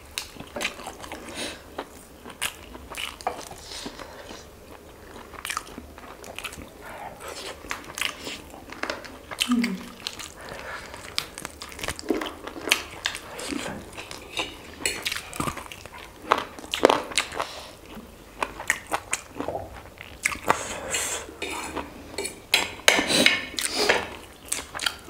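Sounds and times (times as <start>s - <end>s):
chewing and mouth sounds: 0.2s - 25.0s.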